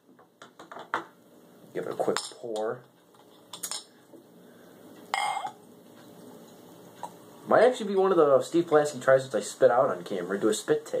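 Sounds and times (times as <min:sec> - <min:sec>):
glass clicks: 0:05.1 - 0:05.6
glassy clink: 0:05.1 - 0:05.6.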